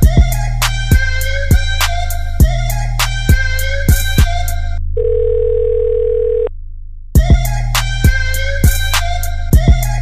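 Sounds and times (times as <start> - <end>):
hip hop beat with kick drums: 0.0 - 4.9, 7.1 - 10.0
bass: 0.0 - 10.0
telephone dial tone: 5.0 - 6.5.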